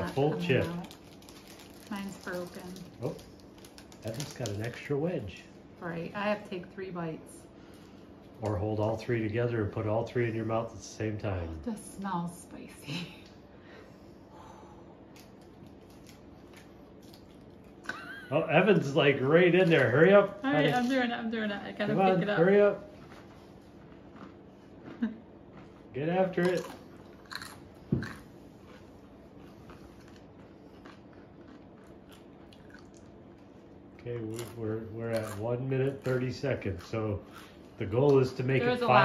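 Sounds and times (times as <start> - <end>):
paper napkins crinkling: 0.0 - 4.9
tortilla chip crunching: 0.0 - 5.1, 15.1 - 17.9, 26.3 - 38.3.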